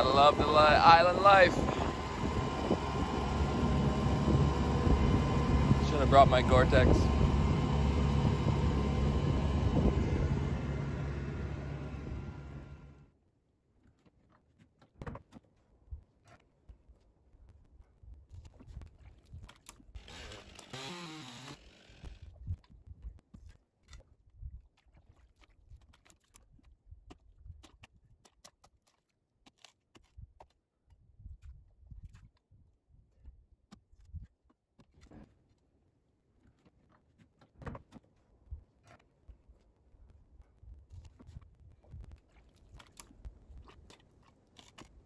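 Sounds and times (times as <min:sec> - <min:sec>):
outboard motor running: 0:00.0 - 0:13.1, 0:19.9 - 0:22.4.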